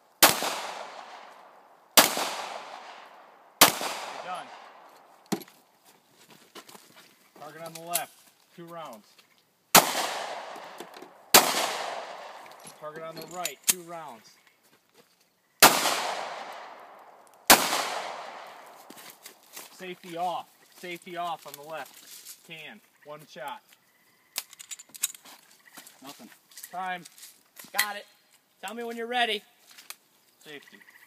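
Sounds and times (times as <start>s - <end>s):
pistol shots with echo: 0.2s - 4.9s, 9.7s - 12.6s, 15.6s - 18.8s.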